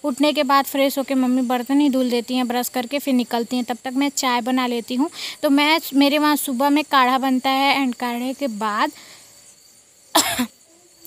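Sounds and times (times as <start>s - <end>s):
woman coughing: 10.1s - 10.6s.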